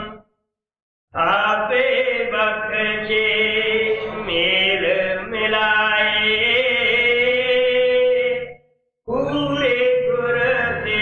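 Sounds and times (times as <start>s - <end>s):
person chanting a hymn: 1.2s - 11.0s.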